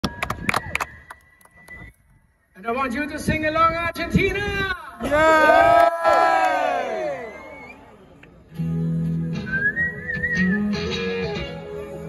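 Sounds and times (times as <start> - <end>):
crowd clapping: 5.1 - 7.7.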